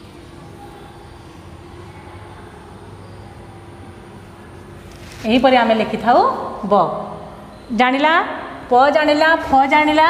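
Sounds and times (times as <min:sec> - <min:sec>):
faint continuous hum: 0:00.0 - 0:10.0.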